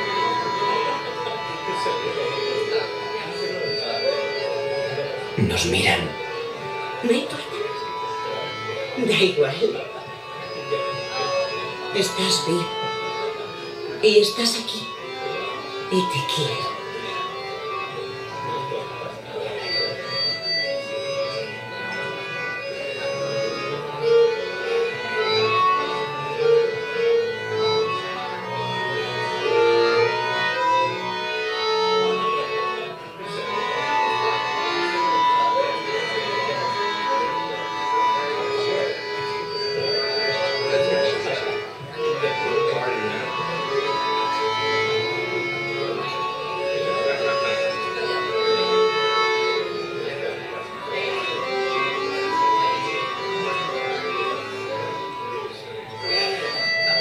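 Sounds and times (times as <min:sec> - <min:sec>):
piano accordion playing melody: 0:00.0 - 0:57.0.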